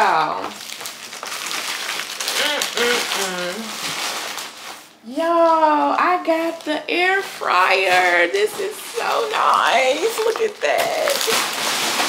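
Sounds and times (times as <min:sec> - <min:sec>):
packaging crinkling and rustling: 0:00.0 - 0:05.0, 0:06.3 - 0:12.0
woman's wordless vocal sounds: 0:02.3 - 0:03.7.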